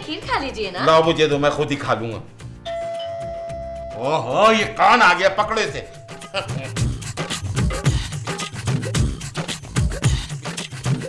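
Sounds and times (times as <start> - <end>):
electronic doorbell tone: 2.6 - 6.5.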